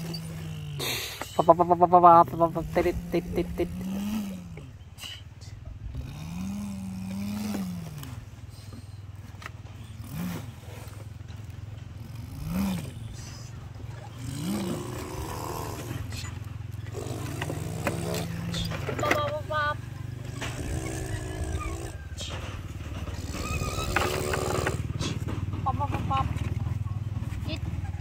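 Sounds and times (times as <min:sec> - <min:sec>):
person imitating truck engine: 0:00.0 - 0:26.4.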